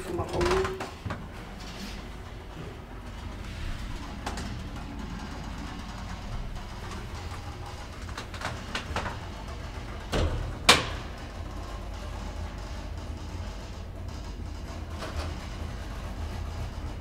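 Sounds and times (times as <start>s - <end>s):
elevator car humming: 0.0s - 17.0s.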